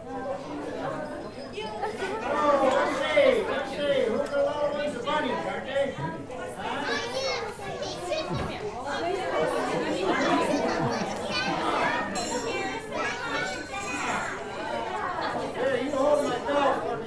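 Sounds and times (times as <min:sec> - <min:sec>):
young children chattering: 0:00.0 - 0:17.0.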